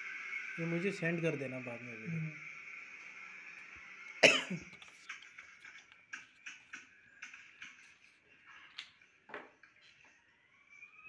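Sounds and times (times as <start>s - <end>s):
person coughing: 4.2s - 4.7s.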